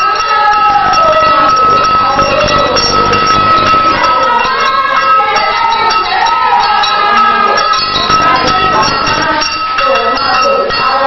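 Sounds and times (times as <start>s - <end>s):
voices singing together: 0.0s - 11.0s
clicking percussion beat: 0.6s - 5.5s, 7.6s - 9.4s
steady high-pitched whine: 0.7s - 4.8s, 7.7s - 9.3s.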